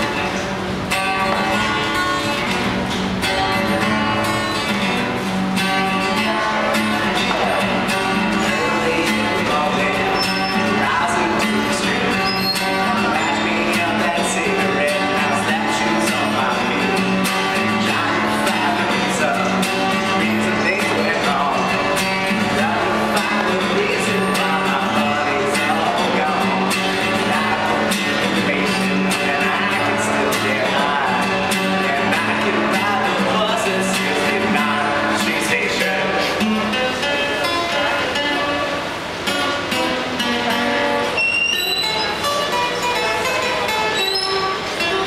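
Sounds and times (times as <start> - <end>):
man singing: 0.0 - 0.5, 5.6 - 38.8
acoustic guitar strumming: 0.0 - 45.0.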